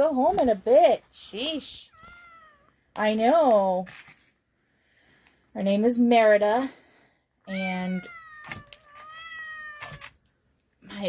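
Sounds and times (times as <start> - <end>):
kitten meowing: 1.9 - 2.7, 7.5 - 10.2.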